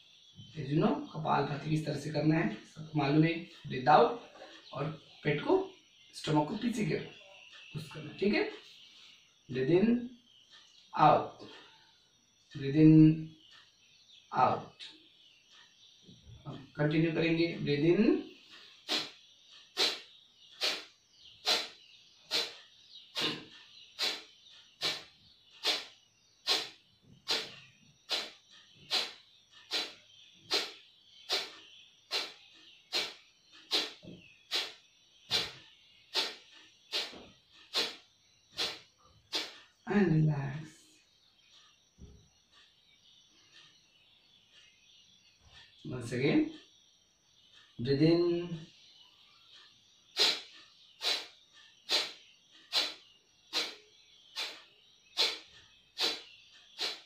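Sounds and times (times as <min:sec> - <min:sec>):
forceful nasal exhalations: 0:18.8 - 0:19.2, 0:19.8 - 0:22.6, 0:23.2 - 0:23.4, 0:24.0 - 0:25.9, 0:26.5 - 0:27.5, 0:28.1 - 0:31.5, 0:32.1 - 0:35.5, 0:36.1 - 0:38.0, 0:38.6 - 0:39.6, 0:50.2 - 0:51.3, 0:51.9 - 0:53.8, 0:54.4 - 0:54.6, 0:55.2 - 0:57.0.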